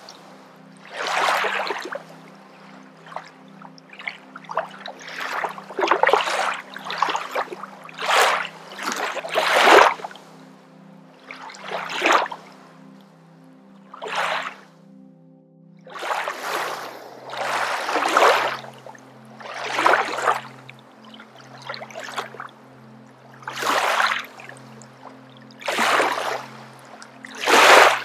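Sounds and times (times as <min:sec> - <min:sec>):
soft music with low drone: 0:00.0 - 0:28.0.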